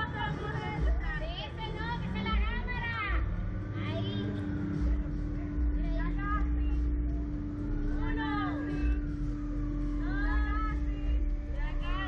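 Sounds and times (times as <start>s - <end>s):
heavy low rumble: 0.0s - 12.0s
mechanical hum: 0.0s - 12.0s.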